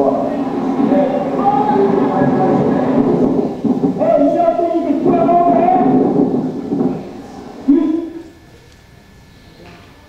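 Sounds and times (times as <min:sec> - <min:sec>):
hurricane wind rushing: 0:00.0 - 0:07.7
voices: 0:00.0 - 0:10.0.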